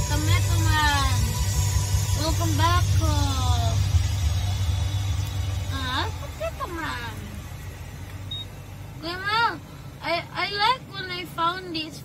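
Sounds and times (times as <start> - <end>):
truck engine rumble in cabin: 0.0 - 11.9.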